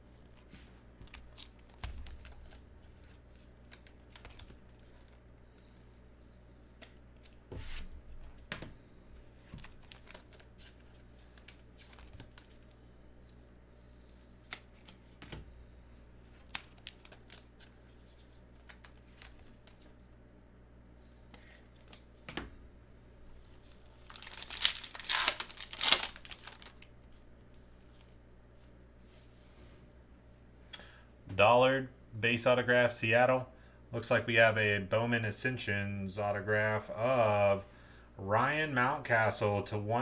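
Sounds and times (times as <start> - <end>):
trading cards rustling: 9.3 - 12.8, 23.5 - 26.9.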